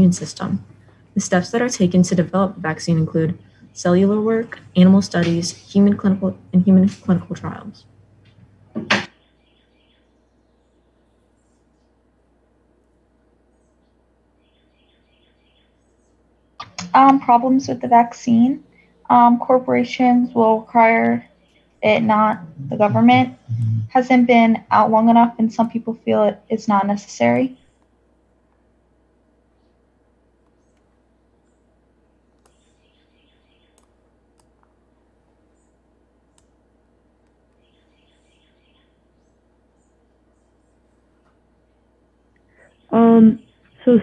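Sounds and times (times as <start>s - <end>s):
low hum: 0.0s - 9.0s, 15.8s - 27.5s
girl speaking: 16.6s - 21.2s, 21.8s - 27.5s, 42.9s - 44.0s
faint computer mouse clicks: 32.4s - 32.6s, 33.7s - 34.7s.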